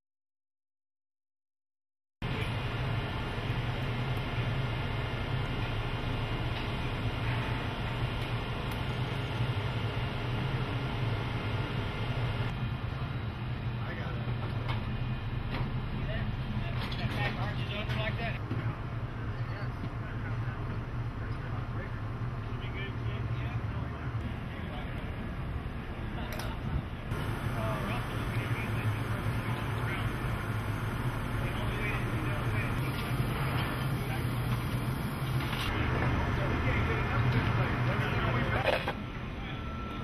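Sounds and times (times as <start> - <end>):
low mechanical hum: 2.2 - 40.0.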